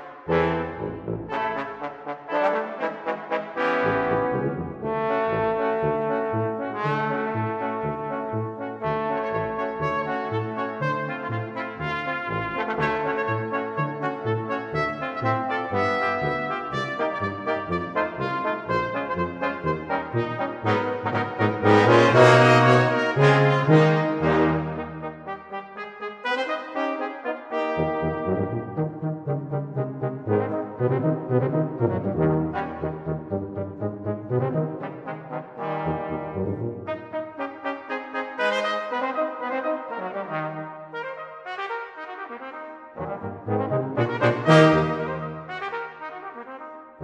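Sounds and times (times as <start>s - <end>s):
brass band playing: 0.0s - 46.7s
bass line: 4.0s - 25.3s, 27.8s - 35.0s, 43.0s - 45.4s.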